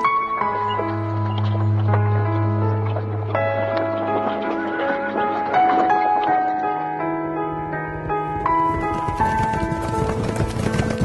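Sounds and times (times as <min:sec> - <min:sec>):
background music: 0:00.0 - 0:11.0
hooves clip-clopping: 0:08.3 - 0:11.0.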